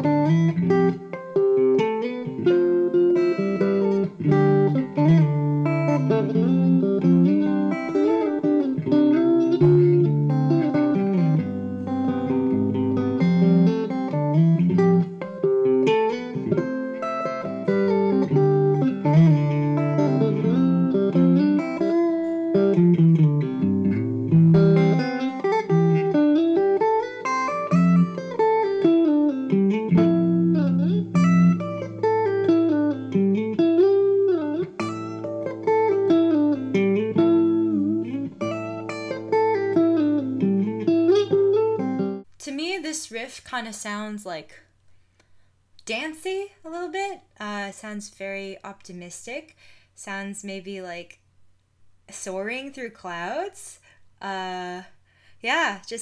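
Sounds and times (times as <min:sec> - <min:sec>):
fingerpicked clean electric guitar: 0:00.0 - 0:42.4.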